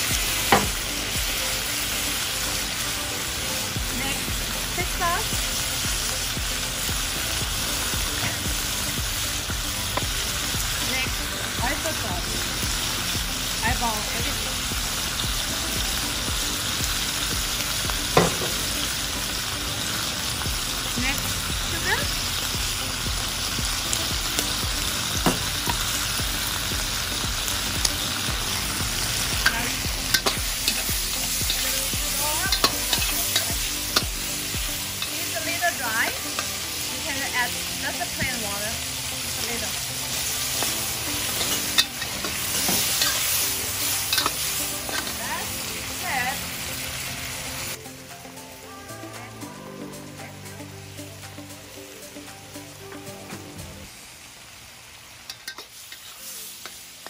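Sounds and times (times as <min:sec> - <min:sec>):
sizzling in a wok: 0:00.0 - 0:57.0.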